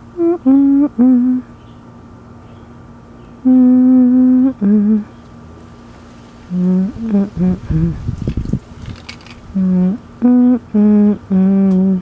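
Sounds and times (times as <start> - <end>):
person humming a slow tune: 0.0 - 1.5, 3.4 - 5.2, 6.5 - 8.1, 9.5 - 12.0.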